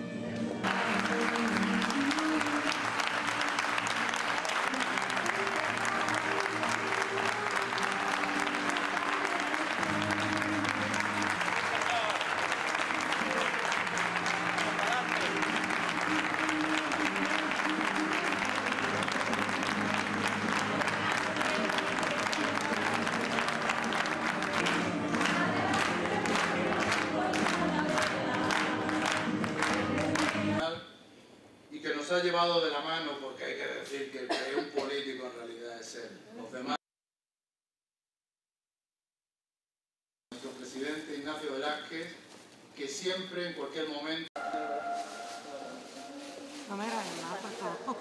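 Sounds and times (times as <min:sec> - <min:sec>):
music: 0:00.0 - 0:30.6, 0:44.4 - 0:47.9
crowd applauding: 0:00.6 - 0:30.6.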